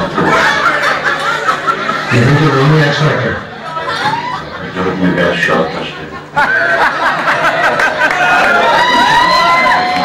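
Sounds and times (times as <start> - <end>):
chatter: 0.0 - 10.0
people laughing: 0.0 - 10.0.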